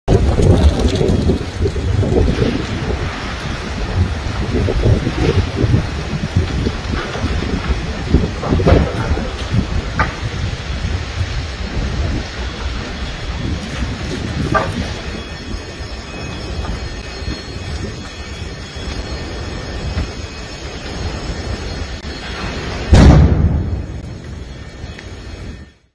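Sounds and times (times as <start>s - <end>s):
wind buffeting microphone: 0.0s - 25.7s
fire roaring: 0.0s - 25.9s.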